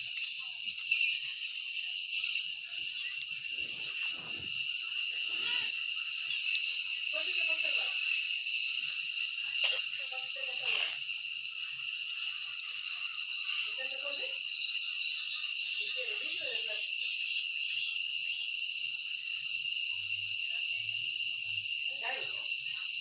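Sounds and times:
high-pitched hiss: 0.0 - 23.0
voice fragments: 3.0 - 5.8.

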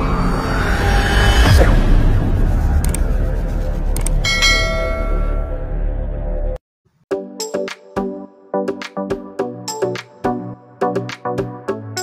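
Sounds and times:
background music: 2.8 - 12.0
bright bell ding: 4.2 - 5.4.

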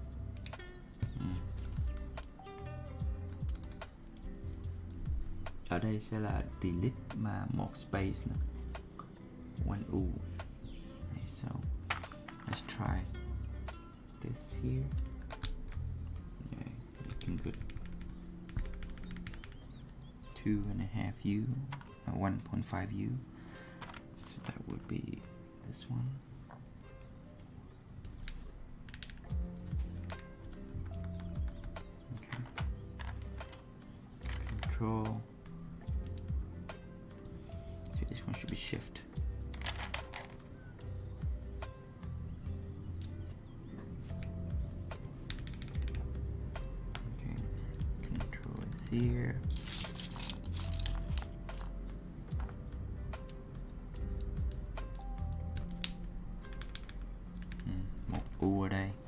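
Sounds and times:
lofi background music: 0.0 - 59.0
keycaps clicking onto switches: 3.1 - 4.3, 17.0 - 20.0, 28.9 - 33.6, 35.8 - 36.4, 45.0 - 46.2, 54.0 - 58.4.

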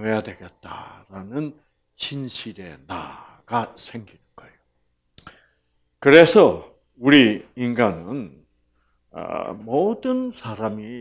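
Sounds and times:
man talking: 0.0 - 4.6, 6.0 - 8.4, 9.1 - 11.0
faint room hum: 0.0 - 11.0.

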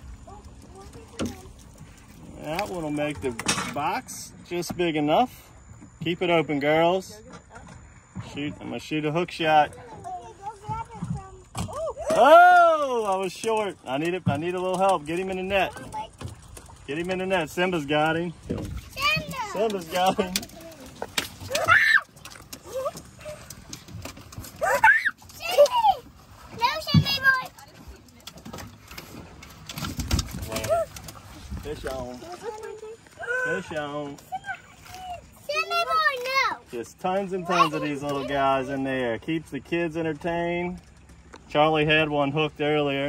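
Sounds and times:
faint children's voices: 0.0 - 2.1, 9.6 - 12.2.

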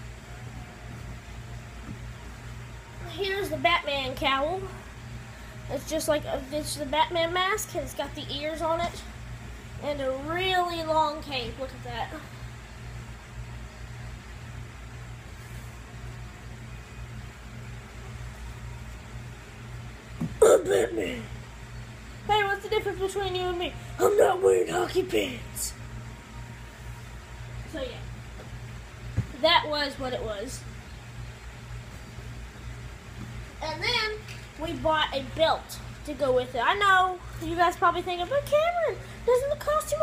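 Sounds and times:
low background hum: 0.0 - 40.0.

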